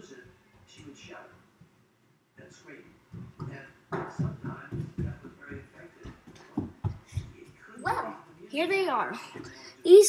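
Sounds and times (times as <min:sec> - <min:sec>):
television speech: 0:00.0 - 0:10.0
footsteps on wooden floor: 0:03.1 - 0:08.0.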